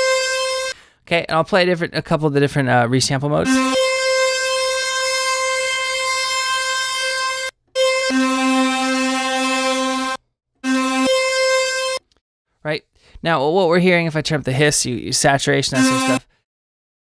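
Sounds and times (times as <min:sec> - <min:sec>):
sustained synth lead notes: 0:03.5 - 0:12.0, 0:15.8 - 0:16.2.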